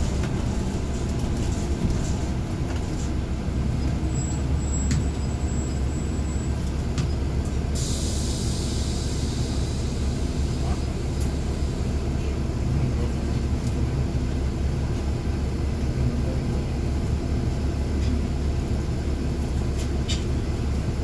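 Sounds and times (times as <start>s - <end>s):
bus diesel engine rumbling: 0.0s - 21.0s.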